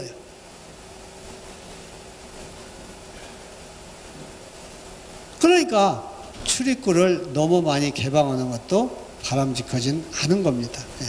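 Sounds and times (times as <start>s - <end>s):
faint steady hum: 0.0s - 11.0s
steady low hiss: 0.0s - 11.0s.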